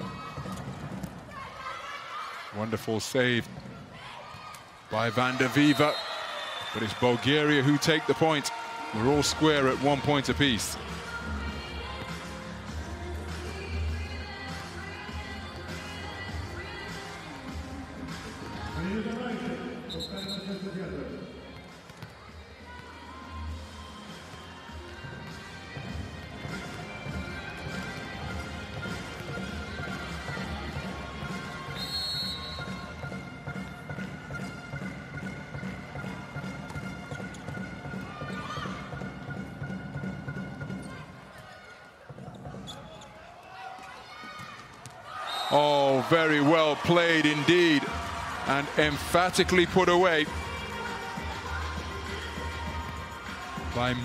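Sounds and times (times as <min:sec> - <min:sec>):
crowd noise: 0:00.0 - 0:36.3, 0:37.0 - 0:54.0
background music with steady beat: 0:06.8 - 0:40.9, 0:45.5 - 0:54.0.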